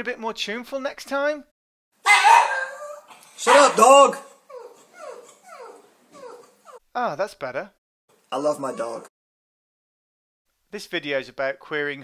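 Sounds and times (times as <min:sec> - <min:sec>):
dog whimpering: 0:02.1 - 0:03.2, 0:04.2 - 0:06.9, 0:08.4 - 0:09.1.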